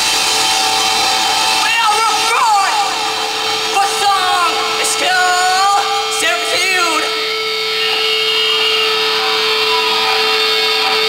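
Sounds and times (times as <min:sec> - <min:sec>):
distorted electric guitar drone: 0:00.0 - 0:11.0
whistling feedback tone: 0:05.8 - 0:11.0.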